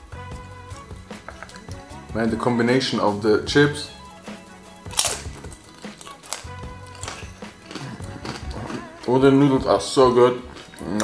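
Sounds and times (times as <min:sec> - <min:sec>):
quiet background music: 0:00.0 - 0:11.0
lip smack: 0:04.9 - 0:08.8
chewing and mouth clicks: 0:04.9 - 0:09.0, 0:10.4 - 0:11.0.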